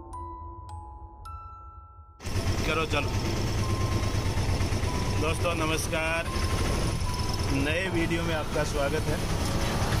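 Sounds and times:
auto-rickshaw engine rumbling: 2.2 - 10.0.

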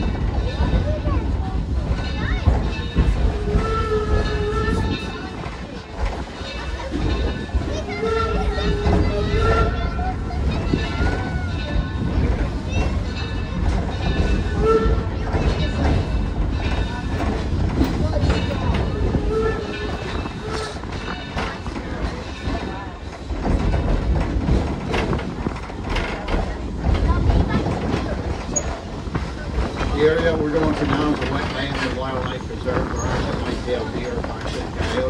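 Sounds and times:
train wheels rumbling: 0.0 - 35.0
wheels clacking over rail joints: 0.0 - 35.0.

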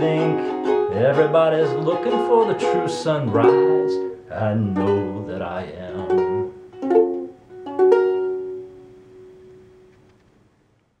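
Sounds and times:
ukulele chord ringing: 0.0 - 9.9.

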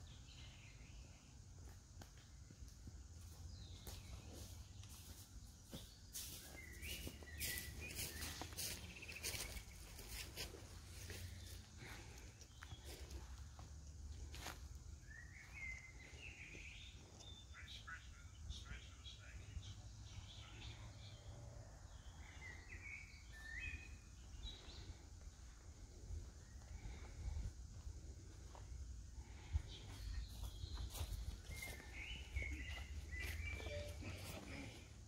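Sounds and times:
woodland birdsong: 0.0 - 35.0
rustles on leaf litter: 6.1 - 11.3.

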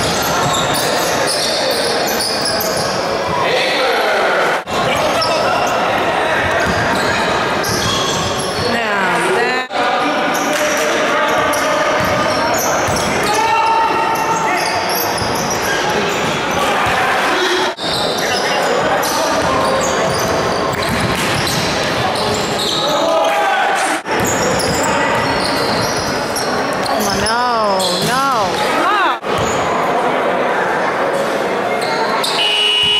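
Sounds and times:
voices of players and spectators: 0.0 - 32.9
shoes squeaking: 24.2 - 28.8.

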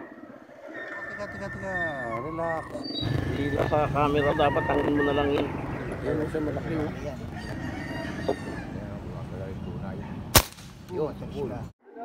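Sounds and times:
rooster crowing: 0.6 - 9.2
low rumble: 3.0 - 7.7
rifle shot: 10.3 - 10.9.

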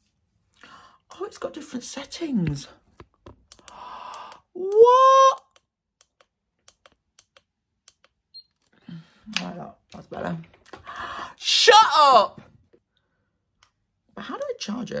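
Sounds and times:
faint small clicks: 3.0 - 4.4
person exclaiming ooh: 4.6 - 5.6.

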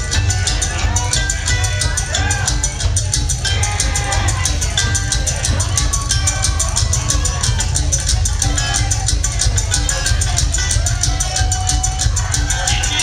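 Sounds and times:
mandolin picking: 0.0 - 13.0.

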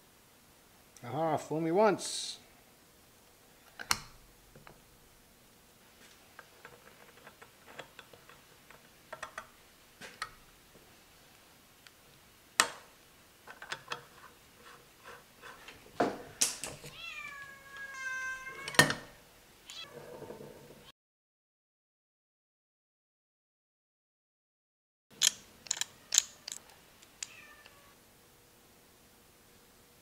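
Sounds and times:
metal gears clicking and clinking: 25.2 - 26.7.

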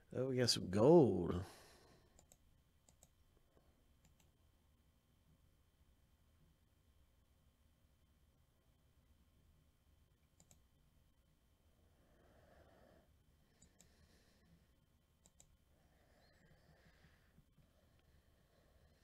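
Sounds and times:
faint low hum: 0.0 - 19.0
faint clicks: 2.1 - 3.2, 4.0 - 4.4, 10.2 - 10.7, 13.6 - 14.0, 15.2 - 15.6.

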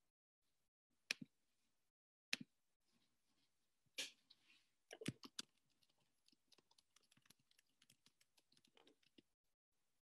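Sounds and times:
typing on computer keyboard: 4.9 - 9.2.

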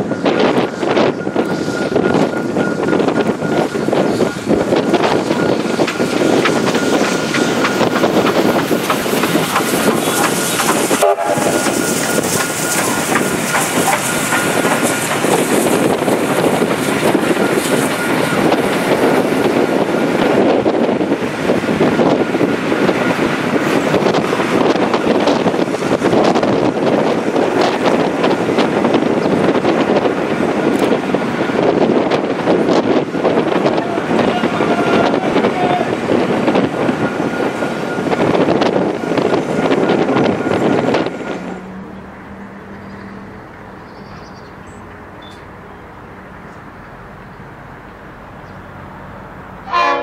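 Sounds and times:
train wheels rushing on rail: 0.0 - 50.0.

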